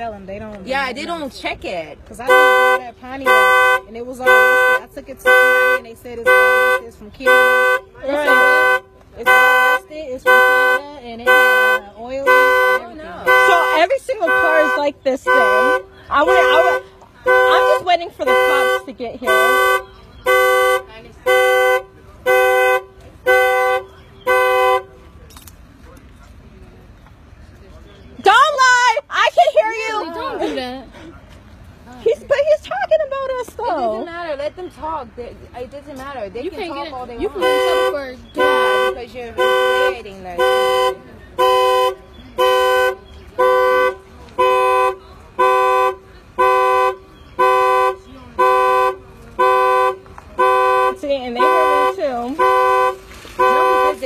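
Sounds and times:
car alarm horn blasts: 2.2s - 25.0s, 37.3s - 54.0s.

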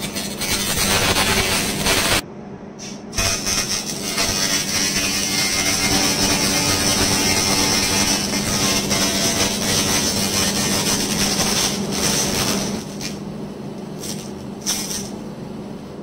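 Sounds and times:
low machine hum: 0.0s - 16.0s
laser cleaner hissing: 2.8s - 12.9s.

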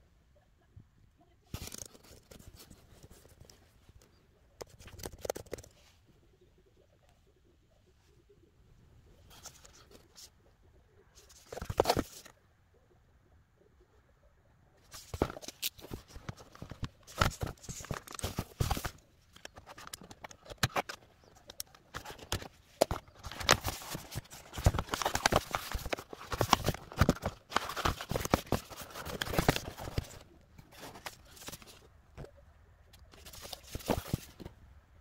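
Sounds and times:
cardboard box being opened: 11.3s - 12.3s, 15.0s - 31.8s, 33.2s - 34.4s
packaging scraping and rustling: 15.0s - 31.8s, 33.1s - 34.5s.

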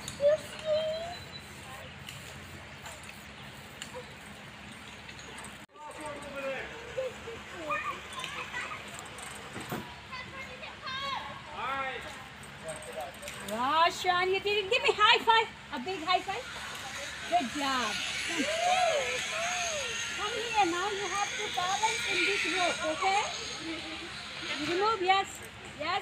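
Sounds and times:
children and adults talking: 0.0s - 26.0s.

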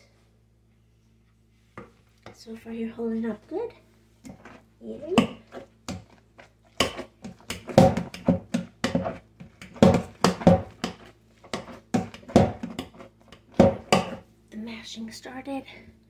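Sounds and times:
potato masher thudding in a pot: 6.8s - 14.2s.

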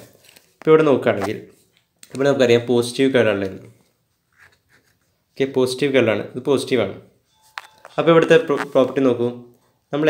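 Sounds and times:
person speaking: 0.0s - 3.9s, 5.4s - 10.0s.

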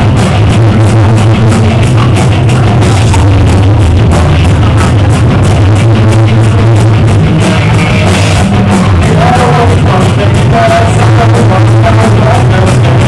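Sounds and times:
bass guitar: 0.0s - 13.0s
drum kit beat: 0.0s - 13.0s
electric guitars: 0.0s - 13.0s.

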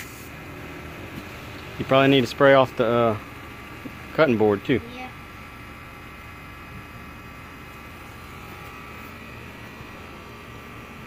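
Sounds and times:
steady background hum and hiss: 0.0s - 11.0s.

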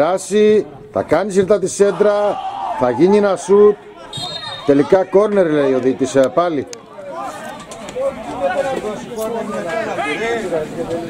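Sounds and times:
men talking and calling out: 0.0s - 11.0s.

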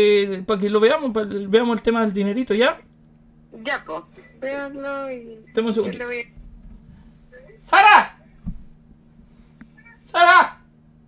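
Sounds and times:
man calling out: 7.3s - 8.2s, 9.8s - 10.7s
soft low thump: 8.4s - 8.8s.

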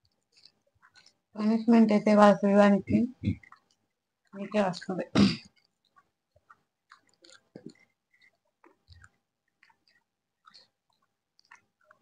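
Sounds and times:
chewing and mouth clicks: 0.0s - 2.0s, 3.1s - 12.0s.

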